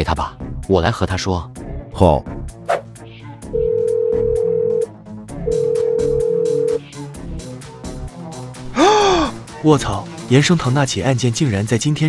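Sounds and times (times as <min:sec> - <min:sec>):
background music with ticking beat: 0:02.4 - 0:12.0
telephone ringback tone: 0:03.6 - 0:04.9, 0:05.5 - 0:06.8.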